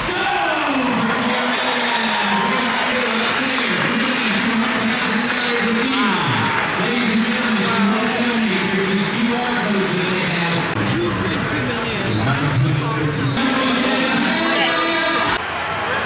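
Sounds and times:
crowd applauding: 0.0 - 11.0
man talking over loudspeaker: 0.0 - 15.4.

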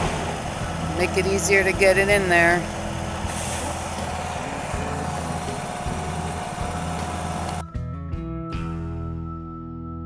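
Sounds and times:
diesel truck engine idling: 0.0 - 7.7.

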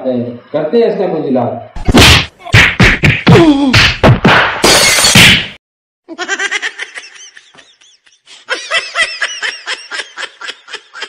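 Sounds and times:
high-pitched laughter: 6.1 - 11.0.

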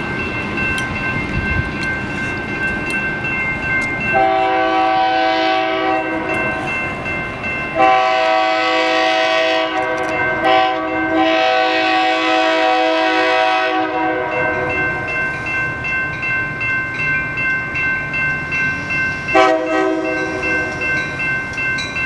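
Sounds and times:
crossing warning bell dinging: 0.0 - 22.0
low rumble of train: 0.0 - 22.0
train horn blasts: 4.1 - 6.3, 7.8 - 14.8, 19.3 - 20.4.

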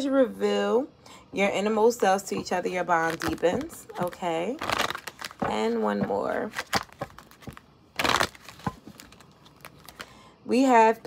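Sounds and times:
cards shuffling: 3.0 - 10.1.

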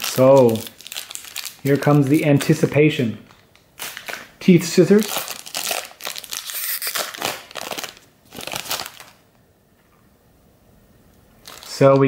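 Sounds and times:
foil wrapper tearing and crinkling: 0.0 - 2.8, 3.5 - 9.2, 11.4 - 11.8.

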